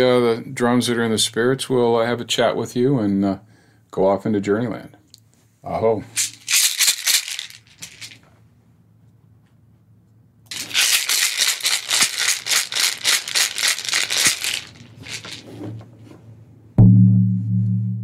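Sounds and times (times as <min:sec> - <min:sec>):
hand rattle shaking: 0:06.0 - 0:08.3, 0:10.5 - 0:15.6
deep frame drum stroke: 0:16.8 - 0:18.0.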